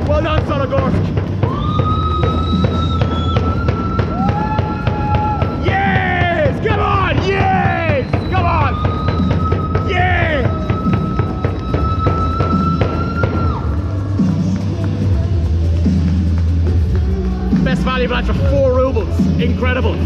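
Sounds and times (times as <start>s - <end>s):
fans chanting and shouting: 0.0s - 16.2s
fans' drum beat: 0.0s - 20.0s
music with low beat: 0.0s - 20.0s.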